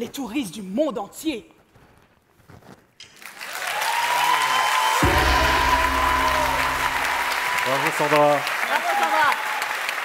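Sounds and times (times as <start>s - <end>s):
audience applause: 3.1s - 10.0s
chamber orchestra held chord: 5.0s - 7.5s.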